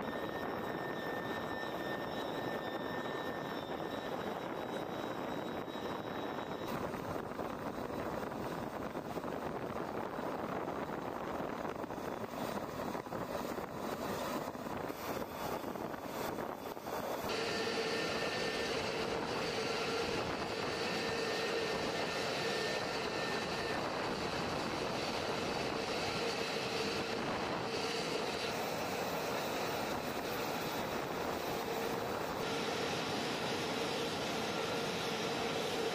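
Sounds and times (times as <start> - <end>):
jet engine rushing and whining: 0.0 - 35.9.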